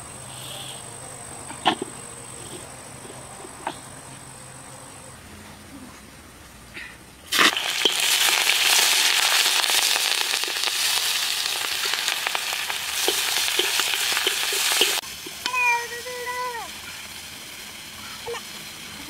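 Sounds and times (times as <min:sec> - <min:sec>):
food sizzling in hot oil: 0:07.2 - 0:19.0.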